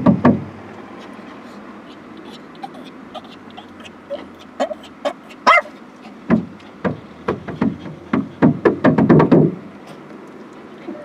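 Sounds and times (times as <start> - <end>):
dog barking: 1.9 - 6.2.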